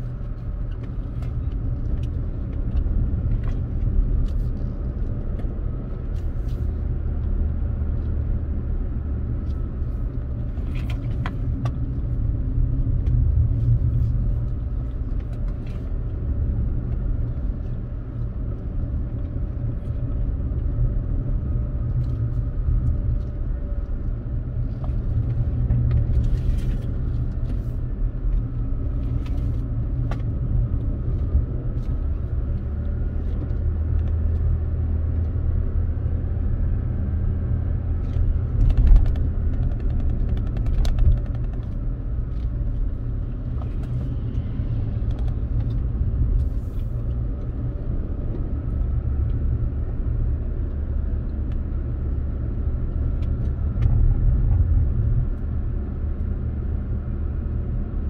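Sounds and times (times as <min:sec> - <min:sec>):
car road and engine rumble: 0:00.0 - 0:58.0.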